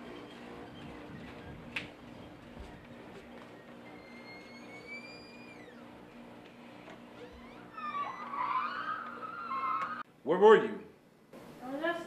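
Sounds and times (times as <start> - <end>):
door hinges squeaking: 3.6 - 5.9, 6.8 - 10.0.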